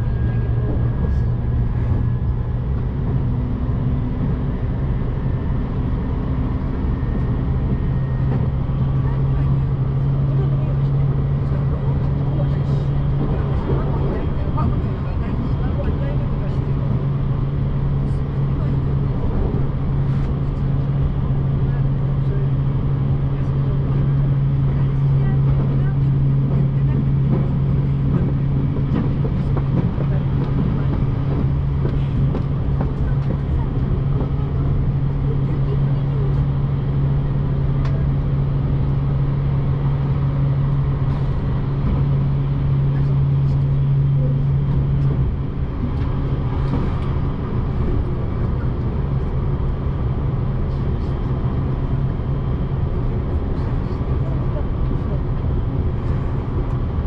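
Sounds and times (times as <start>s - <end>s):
train wheels rumbling on track: 0.0s - 57.0s.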